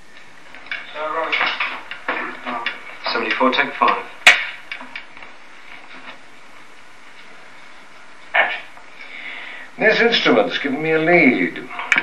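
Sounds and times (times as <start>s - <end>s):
clapperboard snap: 0.8s - 5.2s.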